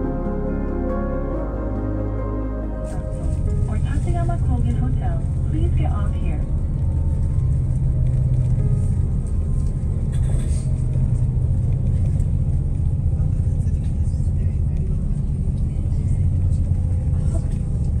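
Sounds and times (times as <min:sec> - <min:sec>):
vehicle engine and road rumble: 0:00.0 - 0:18.0.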